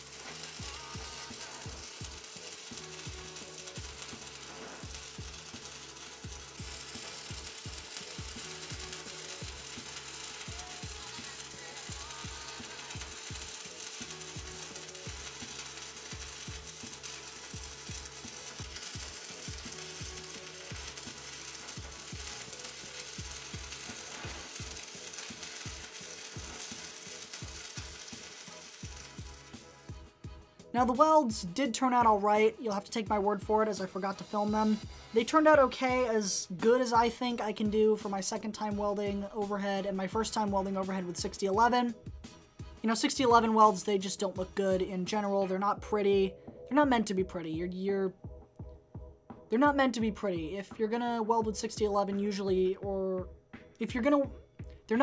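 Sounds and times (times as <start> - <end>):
welding arc crackling: 0.0 - 30.0
background music with bass beat: 0.0 - 32.2, 47.6 - 50.1.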